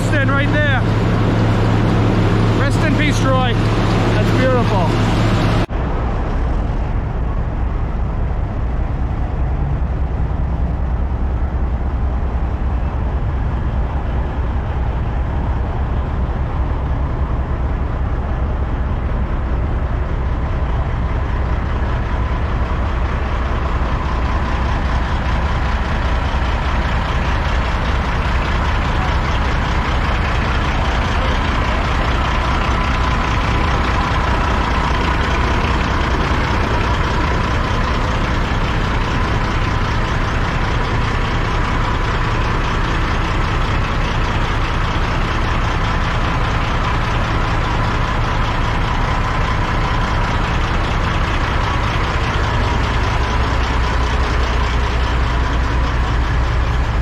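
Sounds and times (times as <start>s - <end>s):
diesel truck engine idling: 0.0s - 57.0s.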